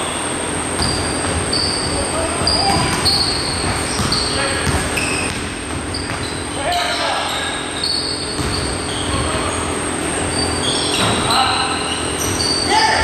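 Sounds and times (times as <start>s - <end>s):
sneakers squeaking: 0.0s - 13.0s
basketball dribbling on hardwood: 2.4s - 6.3s, 8.4s - 8.7s.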